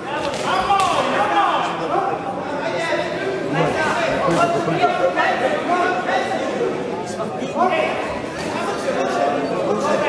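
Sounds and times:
voices calling out in echoing hall: 0.0 - 10.0.

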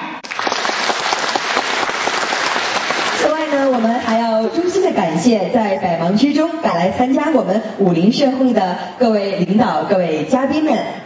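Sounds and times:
audience applauding: 0.2 - 4.2.

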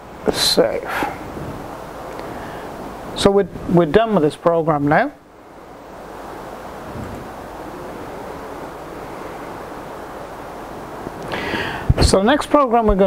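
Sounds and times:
gale-force wind rushing: 0.0 - 13.0.

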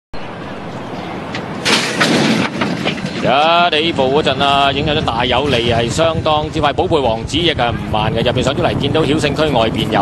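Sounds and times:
racecourse background noise: 0.2 - 10.0
metal starting stalls clashing open: 1.6 - 3.5.

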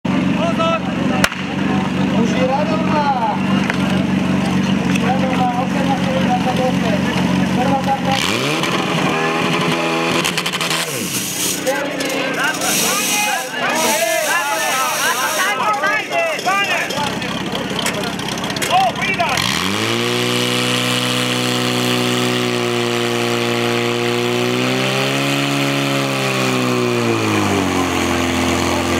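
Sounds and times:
pump engine running and revving: 0.1 - 15.7, 16.8 - 28.9
spectators shouting and cheering: 0.1 - 20.1
sharp crack: 1.2 - 1.7.

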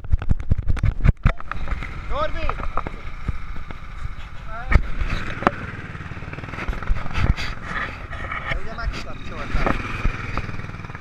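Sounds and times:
rubbing on camera microphone: 3.8 - 5.4, 6.5 - 9.8
people's voices: 7.0 - 10.5.

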